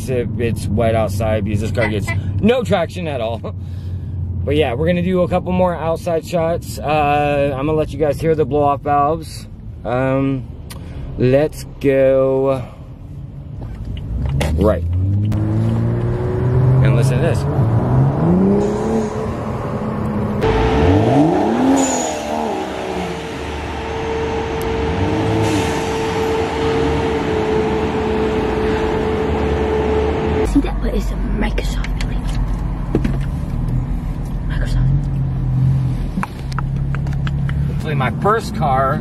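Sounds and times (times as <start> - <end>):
car engine revving and accelerating: 14.1 - 30.5.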